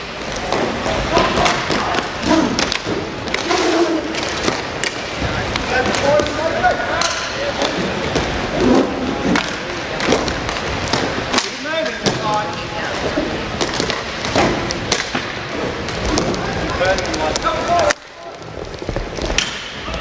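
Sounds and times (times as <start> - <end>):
hockey sticks and puck clacking: 0.0 - 20.0.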